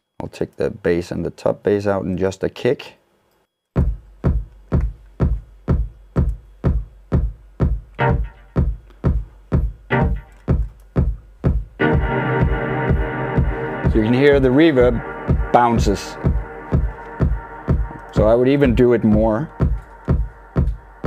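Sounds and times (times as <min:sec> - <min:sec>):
drum machine kick beat: 0:03.8 - 0:21.0
reverberant synth chord: 0:11.8 - 0:18.6.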